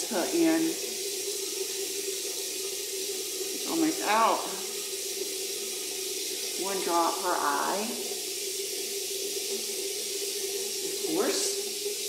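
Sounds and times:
tap running into basin: 0:00.0 - 0:12.0.

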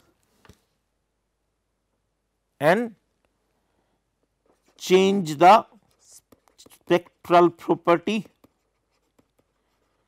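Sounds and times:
stylus scratching on pen tablet: 0:05.4 - 0:10.0.

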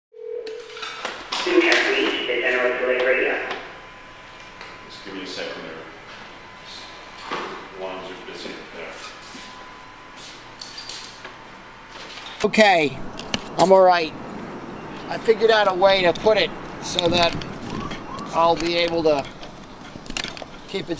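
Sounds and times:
indistinct talking: 0:01.4 - 0:09.0, 0:12.6 - 0:20.0.

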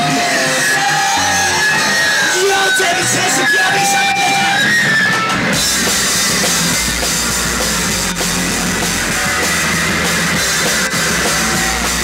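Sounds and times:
drum kit: 0:00.0 - 0:12.0
electric guitar: 0:00.0 - 0:12.0
live rock band playing: 0:00.0 - 0:12.0.

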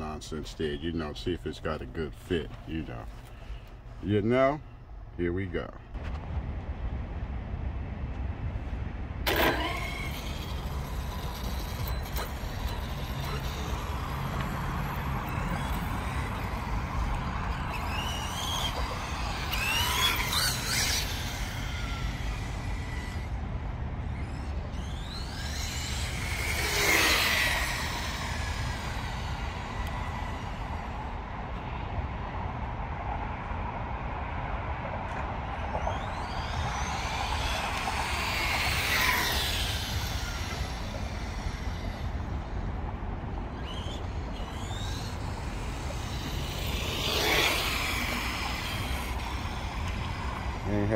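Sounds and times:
low city rumble: 0:00.0 - 0:50.9
remote control car whining past: 0:09.2 - 0:32.2, 0:35.0 - 0:50.9.

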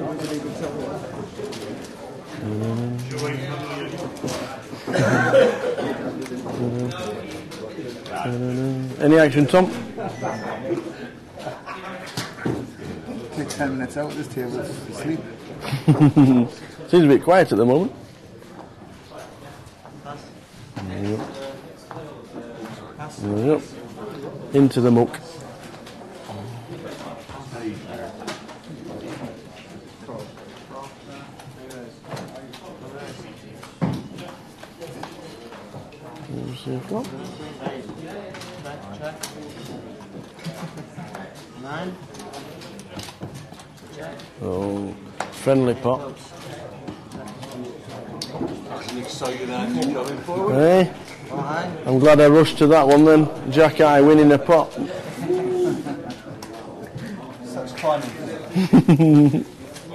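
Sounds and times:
indistinct background voices: 0:00.0 - 0:59.9.

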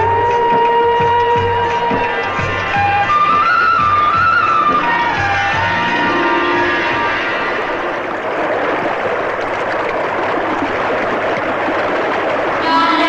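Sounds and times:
film song music: 0:00.0 - 0:09.4
loud crowd noise: 0:00.0 - 0:13.0.

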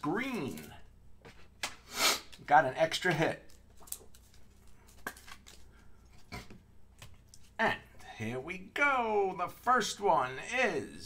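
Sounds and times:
trading cards rustling: 0:03.4 - 0:06.3.

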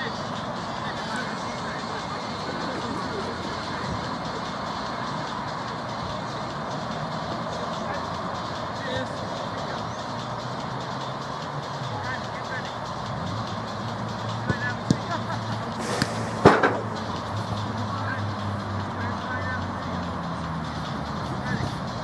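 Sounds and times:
steady background rush: 0:00.0 - 0:22.0.

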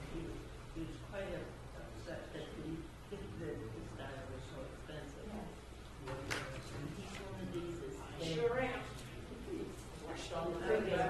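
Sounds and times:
people talking casually: 0:00.0 - 0:11.0.

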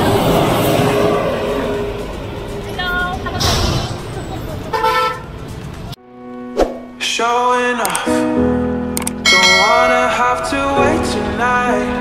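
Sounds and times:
roadside traffic rumbling: 0:00.0 - 0:06.0, 0:09.0 - 0:12.0
vehicle horn toot: 0:04.7 - 0:05.3.

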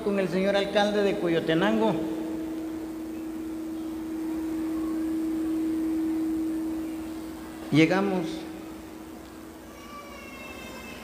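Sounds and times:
low steady tone: 0:00.0 - 0:09.8.

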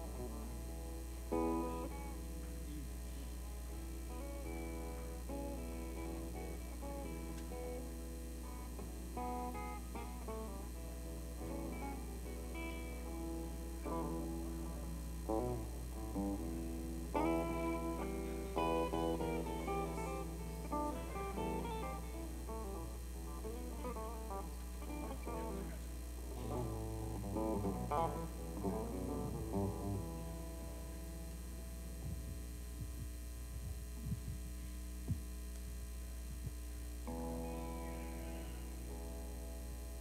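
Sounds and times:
guitar chord ringing: 0:00.0 - 0:32.8, 0:37.0 - 0:40.0
electric guitar blues licks: 0:00.0 - 0:34.5, 0:37.0 - 0:40.0
amp hum: 0:00.0 - 0:40.0.

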